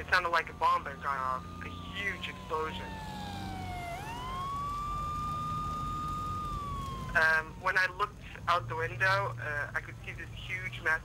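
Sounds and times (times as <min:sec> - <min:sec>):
emergency siren wailing: 0:00.0 - 0:09.0.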